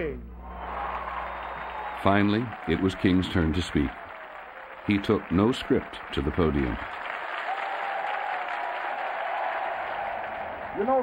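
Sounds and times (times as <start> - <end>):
audience applauding: 0.4 - 11.0.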